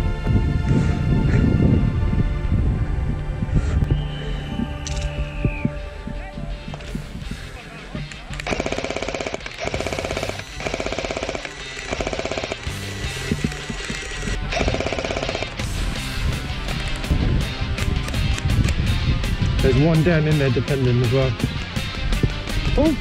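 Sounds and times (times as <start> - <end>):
background music: 0.0 - 23.0
airsoft machine gun firing: 8.4 - 15.6.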